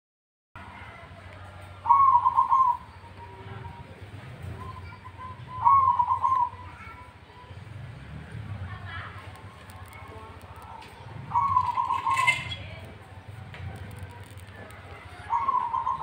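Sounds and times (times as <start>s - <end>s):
dove cooing: 1.8s - 7.0s, 11.1s - 12.8s, 13.8s - 16.0s.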